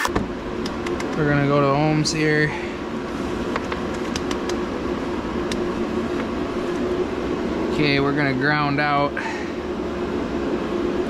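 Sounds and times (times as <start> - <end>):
mechanical drone with hum: 0.0 - 11.0.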